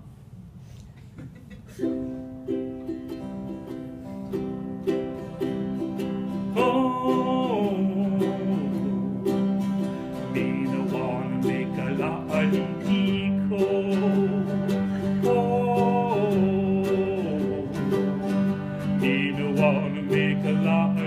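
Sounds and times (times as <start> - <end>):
ukulele and guitars strumming: 1.3 - 21.0
high held melody line: 1.8 - 21.0.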